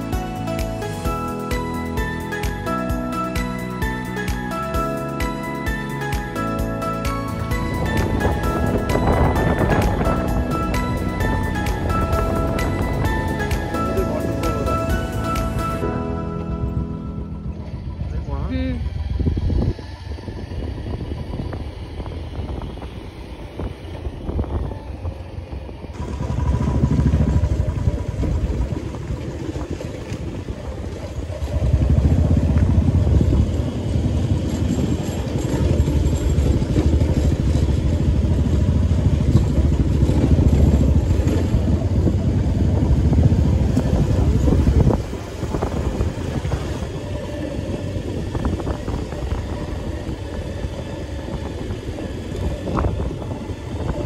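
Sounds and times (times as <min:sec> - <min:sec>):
motorcycle engine: 0:00.0 - 0:54.0
wind buffeting microphone: 0:07.4 - 0:54.0.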